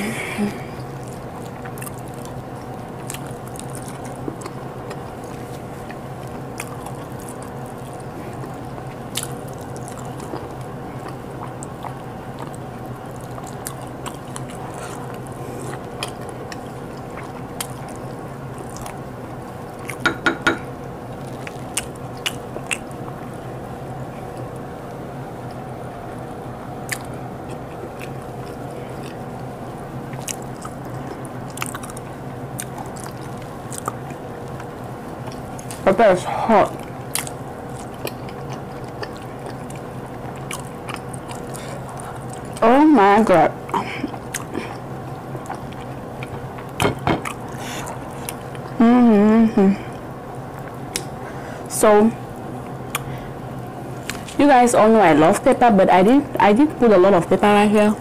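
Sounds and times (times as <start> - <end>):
low background hum: 0.0 - 58.0
chewing and mouth smacks: 0.8 - 20.2, 21.1 - 23.3, 26.8 - 29.5, 30.1 - 35.8, 36.7 - 42.6, 43.6 - 48.8, 50.5 - 51.2, 52.6 - 53.2, 54.0 - 54.4.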